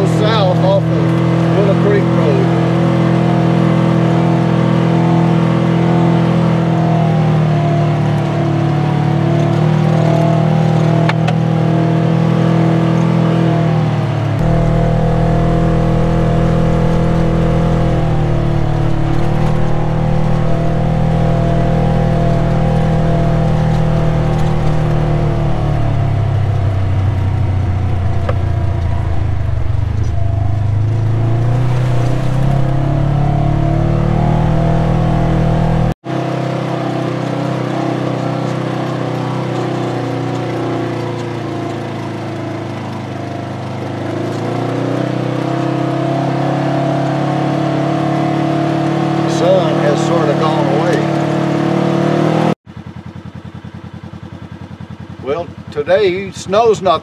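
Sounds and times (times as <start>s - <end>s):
engine running with throttle changes: 0.0s - 57.0s.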